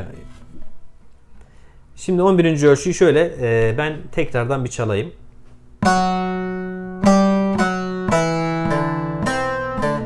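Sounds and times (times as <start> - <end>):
plucked long-necked lute: 5.8 - 10.0.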